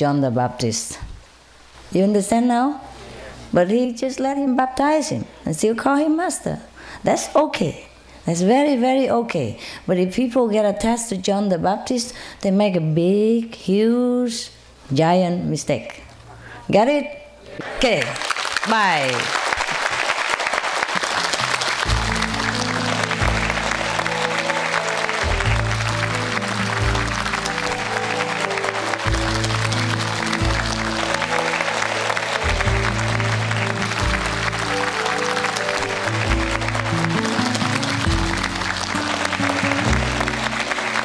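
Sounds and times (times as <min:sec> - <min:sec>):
audience applauding: 0:17.6 - 0:41.0
instrumental music: 0:20.9 - 0:41.0.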